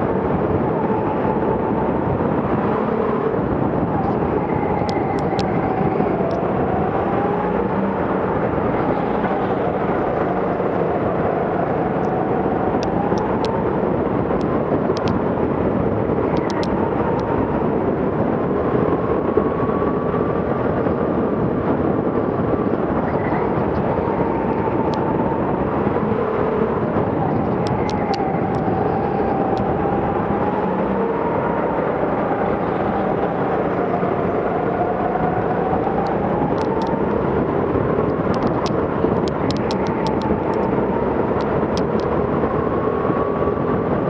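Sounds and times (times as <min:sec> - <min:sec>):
faint clicks: 0:38.3 - 0:40.7.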